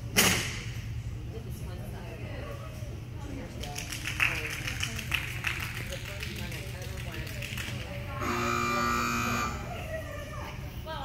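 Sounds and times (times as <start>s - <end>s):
electronic timer buzzer: 8.2s - 9.7s.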